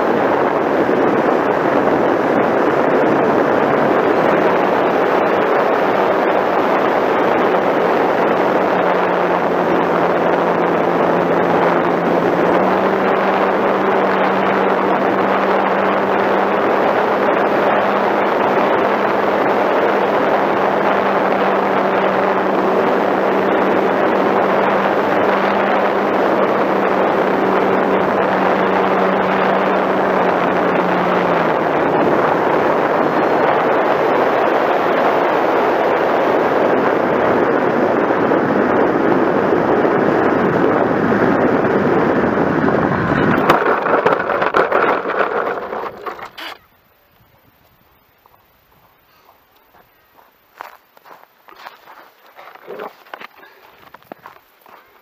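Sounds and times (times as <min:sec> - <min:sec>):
wind rush: 0:00.0 - 0:46.6
airplane touching down on snow: 0:00.0 - 0:46.7, 0:50.6 - 0:55.0
model airplane motor running: 0:00.0 - 0:46.7.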